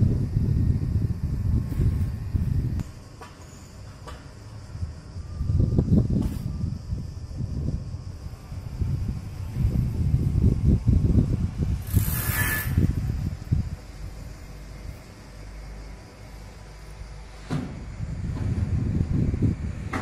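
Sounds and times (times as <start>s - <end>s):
wind buffeting microphone: 0.0s - 3.2s, 4.5s - 20.0s
sharp hiss of air: 0.0s - 20.0s.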